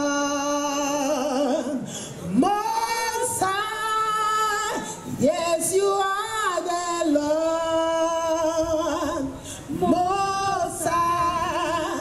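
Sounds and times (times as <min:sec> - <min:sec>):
woman singing gospel song: 0:00.0 - 0:12.0.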